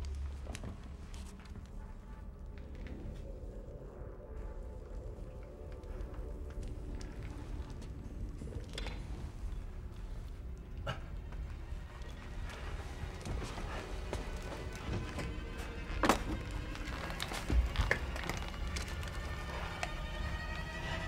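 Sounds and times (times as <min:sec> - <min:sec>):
tense film music: 0:00.0 - 0:21.0.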